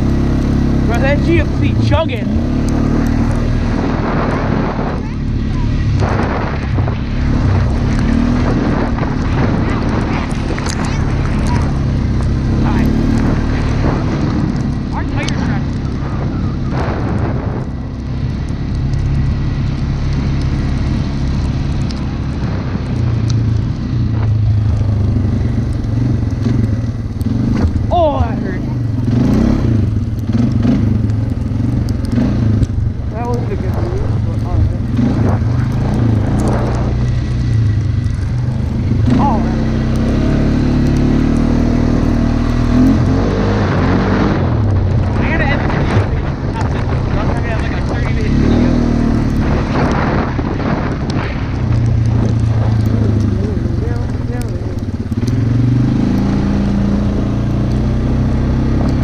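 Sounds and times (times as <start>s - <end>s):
quad bike engine revving: 0.0s - 59.0s.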